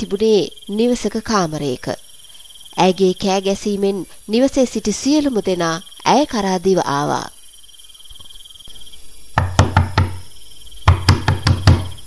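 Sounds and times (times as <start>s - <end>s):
crickets chirping faintly: 0.0s - 12.0s
knocking on wooden door: 9.4s - 10.2s, 10.8s - 12.0s.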